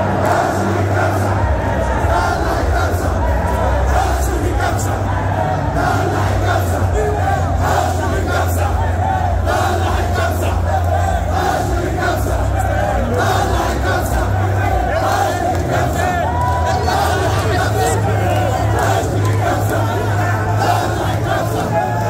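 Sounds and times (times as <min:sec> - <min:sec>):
crowd shouting and chanting: 0:00.0 - 0:22.0.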